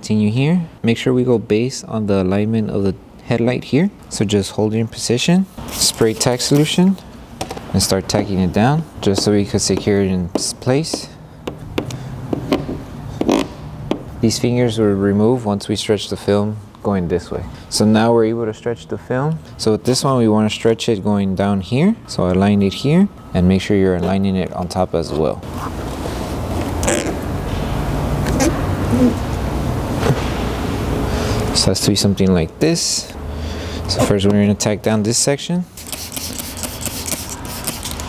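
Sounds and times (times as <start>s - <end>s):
fingers rubbing film on plastic: 35.8s - 38.0s.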